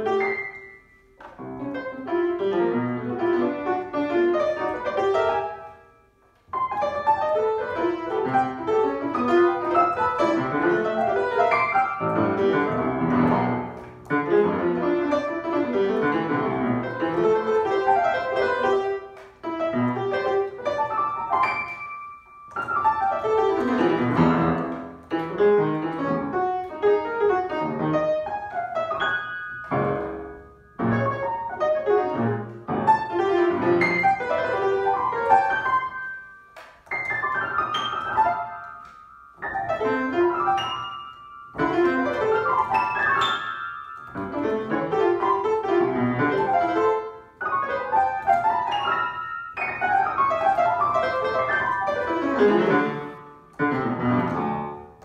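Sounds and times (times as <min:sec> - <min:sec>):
solo piano improvisation: 0:00.0 - 0:55.0.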